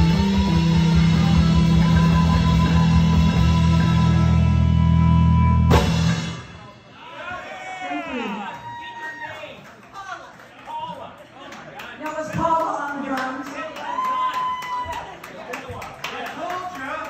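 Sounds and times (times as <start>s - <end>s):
rock band final chord: 0.0s - 6.8s.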